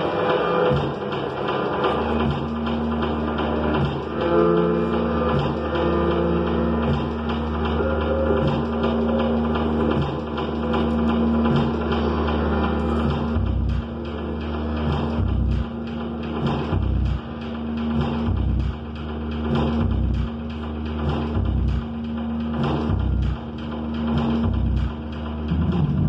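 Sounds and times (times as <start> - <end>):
deep bass pulses: 0.0 - 26.0
experimental electronic drones: 0.0 - 26.0.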